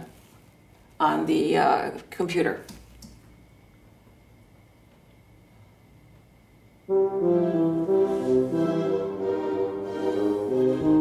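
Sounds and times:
computer playing tuba melody: 0:06.9 - 0:11.0.

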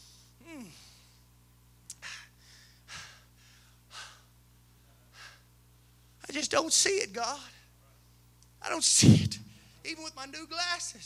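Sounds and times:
low electrical hum: 0:00.0 - 0:11.0
man breathing hard: 0:01.9 - 0:05.6.

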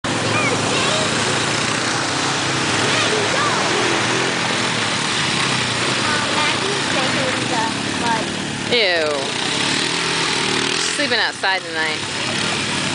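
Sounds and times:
atv engine running: 0:00.0 - 0:12.9
voices calling out: 0:00.0 - 0:12.9.

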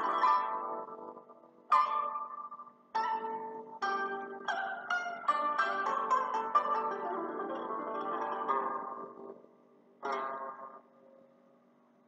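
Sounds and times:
plucked string instrument notes: 0:00.0 - 0:11.6.

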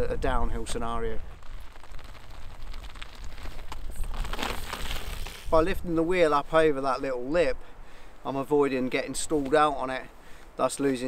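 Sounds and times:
bike tyres rolling over gravel: 0:00.0 - 0:07.3.

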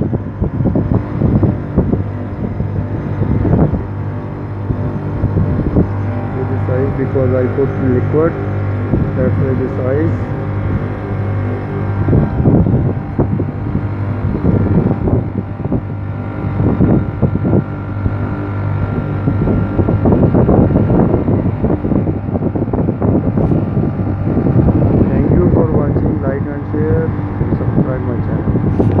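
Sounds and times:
air conditioner compressor humming: 0:00.0 - 0:29.0.

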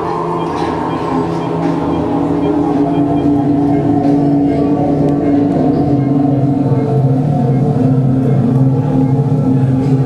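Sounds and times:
low musical drone chord: 0:00.0 - 0:10.0.

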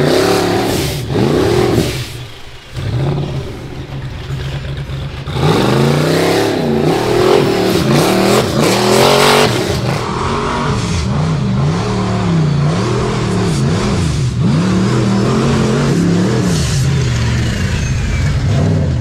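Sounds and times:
engine revving: 0:00.0 - 0:19.0.

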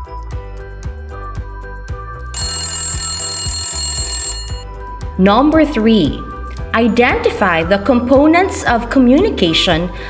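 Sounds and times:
background music with steady beat: 0:00.0 - 0:10.0
bell ringing: 0:02.3 - 0:04.7.

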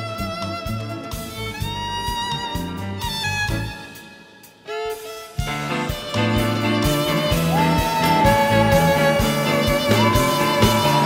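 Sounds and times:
band playing with violins: 0:00.0 - 0:11.0
violin line: 0:00.0 - 0:11.0.

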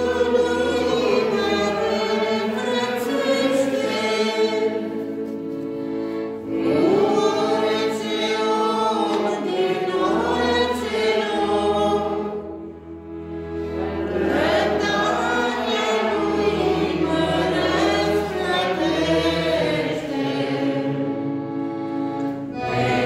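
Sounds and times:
congregation singing a hymn: 0:00.0 - 0:23.0.

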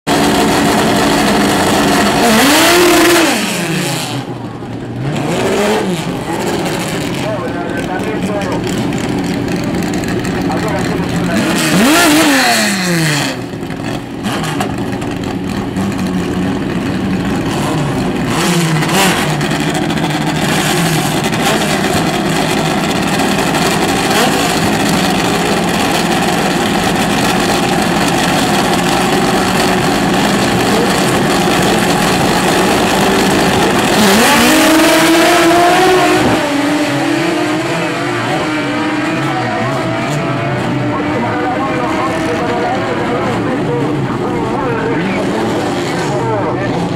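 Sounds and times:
racing car engines revving: 0:00.1 - 0:46.9.

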